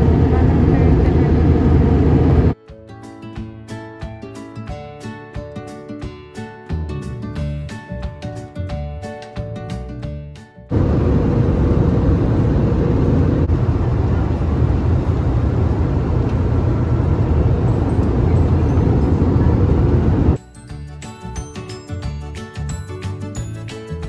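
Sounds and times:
airliner cabin noise: 0:00.0 - 0:02.6, 0:10.7 - 0:20.4.

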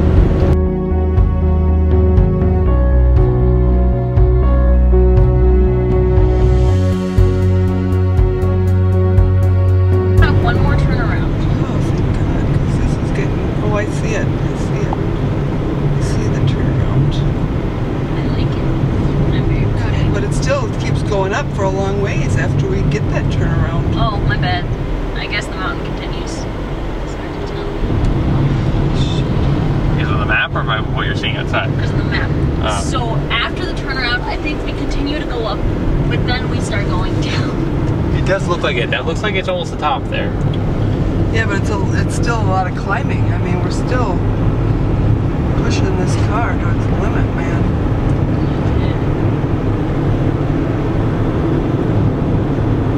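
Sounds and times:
car engine droning under load: 0:00.0 - 0:52.9
indistinct voices: 0:10.1 - 0:15.2, 0:15.9 - 0:17.4, 0:18.1 - 0:44.4, 0:45.5 - 0:49.2.

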